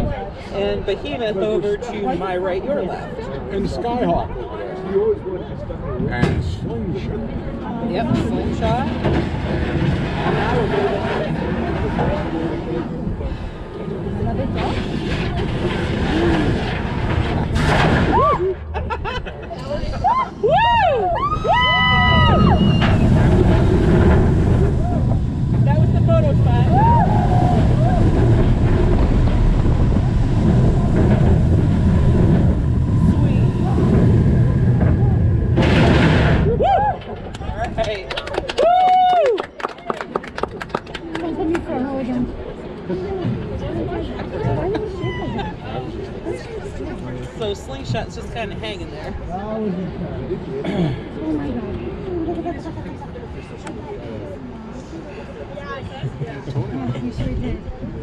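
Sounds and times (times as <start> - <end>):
rushing wind and track rumble: 0.0 - 58.0
people laughing: 18.4 - 20.6, 44.0 - 46.4
riders screaming and whooping: 19.9 - 23.6, 26.6 - 28.9, 36.4 - 37.2, 38.6 - 39.4, 44.8 - 45.8.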